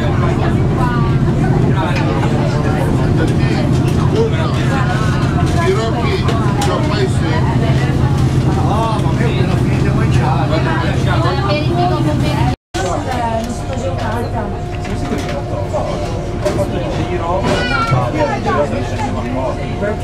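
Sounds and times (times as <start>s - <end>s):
boat engine droning: 0.0s - 20.0s
people talking: 0.0s - 20.0s.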